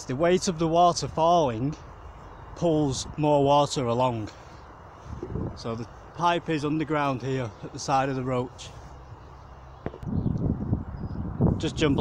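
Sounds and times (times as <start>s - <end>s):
wind buffeting microphone: 4.8s - 6.0s, 9.8s - 12.0s.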